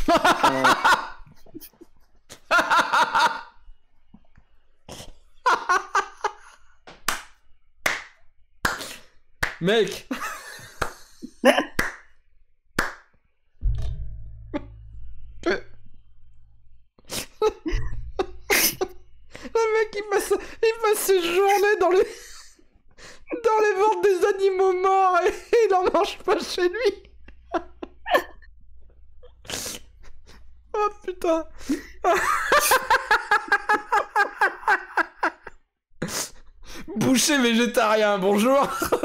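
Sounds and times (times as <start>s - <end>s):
man laughing hard: 0.0s - 1.8s, 2.4s - 3.5s, 5.4s - 6.6s, 17.3s - 19.0s, 31.8s - 35.5s, 38.6s - 39.0s
man laughing: 0.0s - 3.5s, 5.4s - 6.6s, 10.1s - 11.8s, 17.3s - 19.0s, 19.6s - 22.6s, 23.3s - 28.4s, 30.8s - 35.5s, 38.6s - 39.0s
low steady hum: 13.6s - 16.8s.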